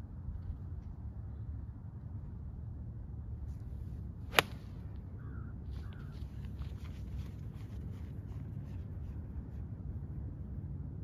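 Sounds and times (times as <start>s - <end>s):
golf club striking ball: 4.3s - 4.9s.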